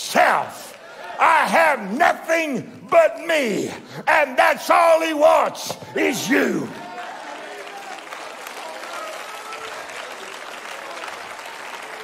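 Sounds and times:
congregation applauding: 0:05.7 - 0:12.0.

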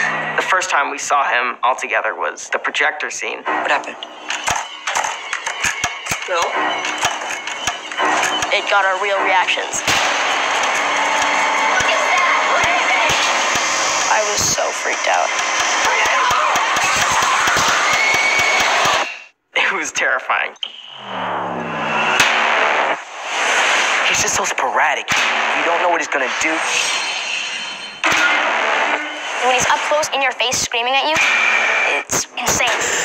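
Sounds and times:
noisy soundtrack: 0:00.0 - 0:33.0.

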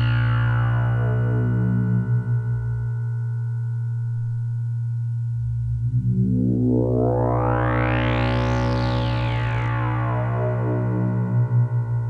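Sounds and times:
low synthesizer drone: 0:00.0 - 0:12.0.

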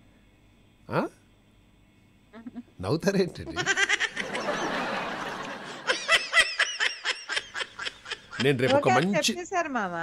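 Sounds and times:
person laughing: 0:03.5 - 0:04.8, 0:05.7 - 0:09.2.

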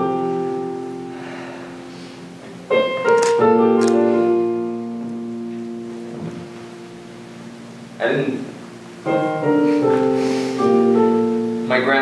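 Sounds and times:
piano chord: 0:00.0 - 0:12.0
room noise: 0:00.0 - 0:12.0.

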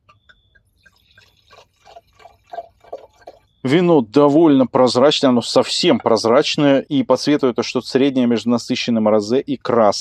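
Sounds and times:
wine glugging into glass: 0:00.8 - 0:03.8.

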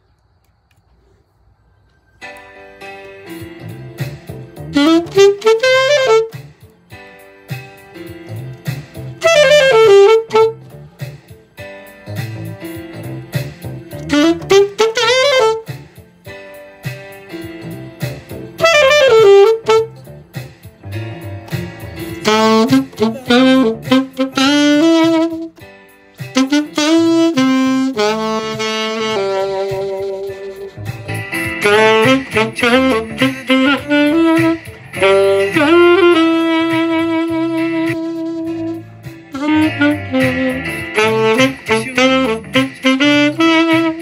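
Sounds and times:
alto saxophone melody: 0:03.2 - 0:07.2, 0:07.8 - 0:44.0.

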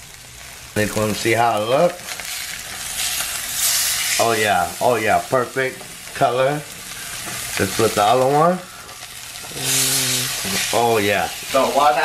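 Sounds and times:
fish sizzling in hot oil: 0:00.0 - 0:12.0.

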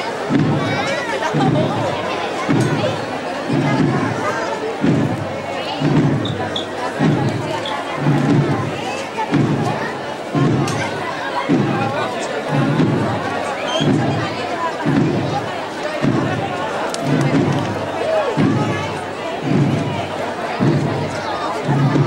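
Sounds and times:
muffled processional drum beating: 0:00.0 - 0:22.0
murmur of large crowd: 0:00.0 - 0:22.0.

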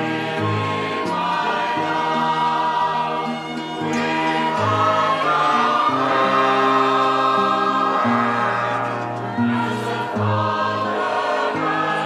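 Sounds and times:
choir singing a hymn: 0:00.0 - 0:12.0.

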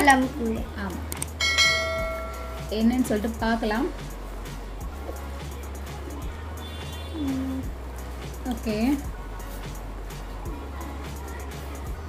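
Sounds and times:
bell ding: 0:01.4 - 0:02.8.

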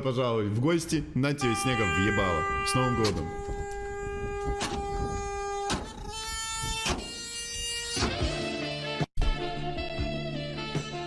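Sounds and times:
truck horn blasts: 0:01.4 - 0:08.8.

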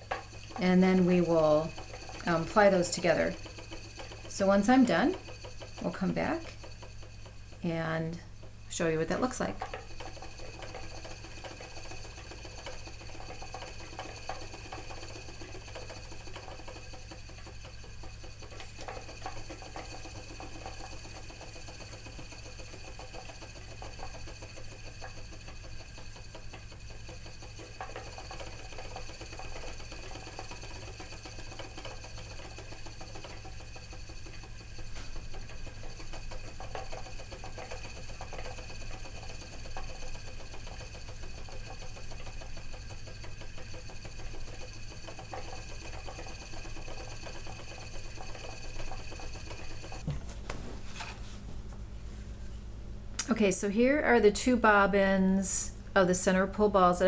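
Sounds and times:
spinning wheel whirring: 0:00.0 - 0:50.1
treadle mechanism working: 0:00.0 - 0:51.2.

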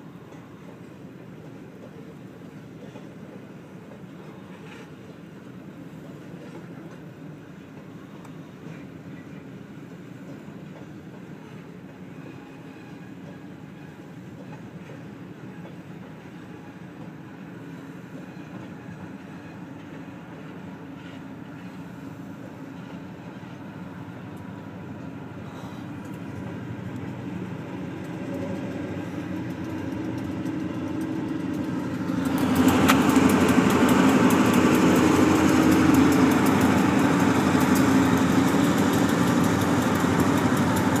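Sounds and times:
diesel locomotive engine drone: 0:00.0 - 0:41.0
freight cars rolling past: 0:21.3 - 0:41.0.

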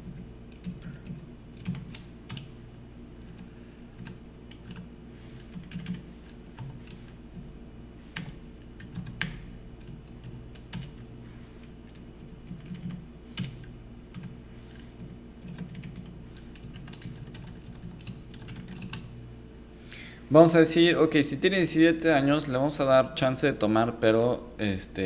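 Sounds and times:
typing on computer keyboard: 0:00.0 - 0:02.5, 0:03.3 - 0:06.0, 0:08.2 - 0:11.0, 0:11.9 - 0:14.4, 0:15.0 - 0:19.1
low steady hum: 0:00.0 - 0:25.0.

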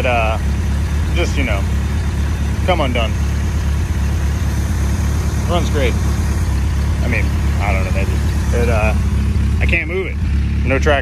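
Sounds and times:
pickup engine rumbling: 0:00.0 - 0:11.0.

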